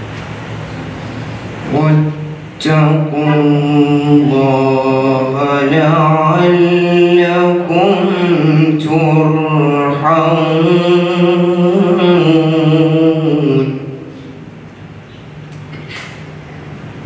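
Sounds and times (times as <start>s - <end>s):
man chanting recitation: 1.6s - 14.4s.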